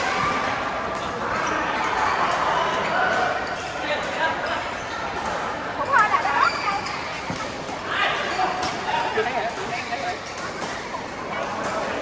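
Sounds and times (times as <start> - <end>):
voices across hall: 0.0 - 12.0
shoes squeaking on court: 5.8 - 11.4
rackets hitting shuttlecock: 6.8 - 12.0.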